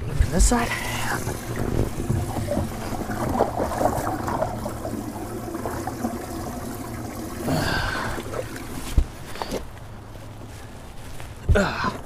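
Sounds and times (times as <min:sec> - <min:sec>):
water splashing and trickling: 0:00.1 - 0:10.3.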